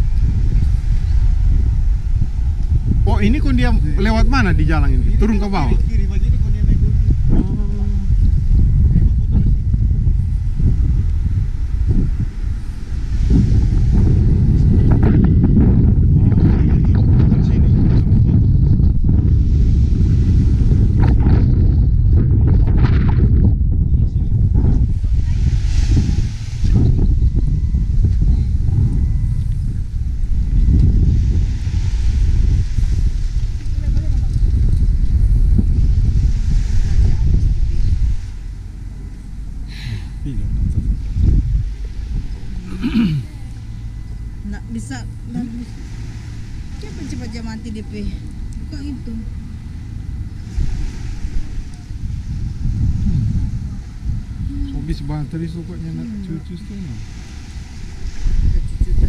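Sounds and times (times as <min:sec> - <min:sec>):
wind buffeting microphone: 0:00.0 - 0:59.0.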